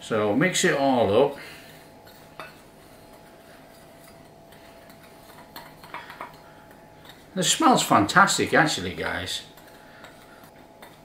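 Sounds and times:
spoon scraping powder in bowl: 1.7 - 8.2, 8.9 - 11.0.

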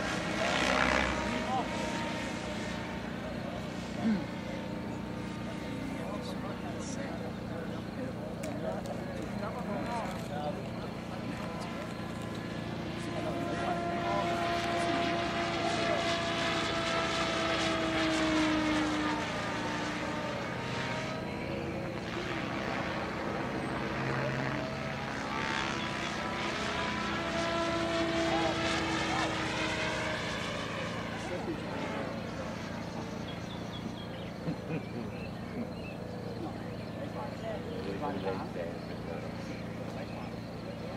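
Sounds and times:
model helicopter engine drone: 0.0 - 40.9.

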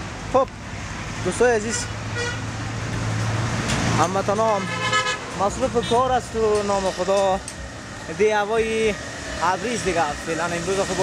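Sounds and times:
vehicle passing by: 0.7 - 11.0
car horn toot: 1.7 - 2.4, 4.6 - 5.2.

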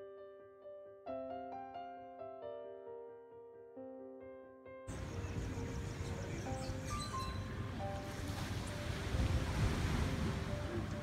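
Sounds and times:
soft background music: 0.1 - 11.0
wind buffeting microphone: 4.9 - 11.0
surf: 7.4 - 11.0.

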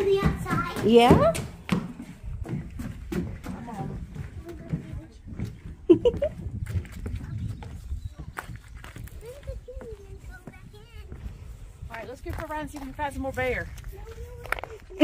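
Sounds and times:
footsteps on wooden floorboards: 0.0 - 14.2.

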